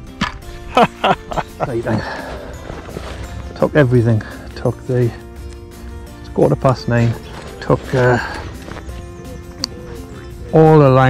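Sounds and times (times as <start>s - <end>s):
background music: 0.0s - 11.0s
person laughing: 0.6s - 2.4s.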